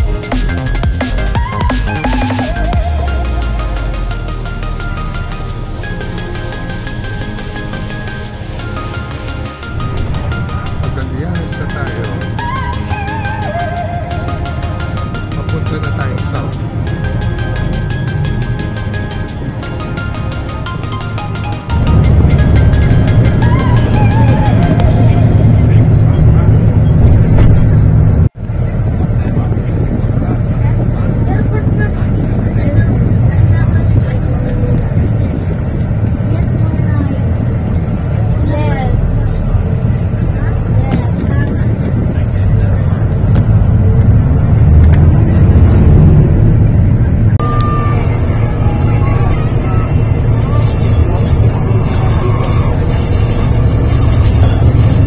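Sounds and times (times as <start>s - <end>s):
music: 0.0s - 27.0s, 47.4s - 55.0s
moving bus rumble: 0.0s - 55.0s
voices: 28.5s - 55.0s.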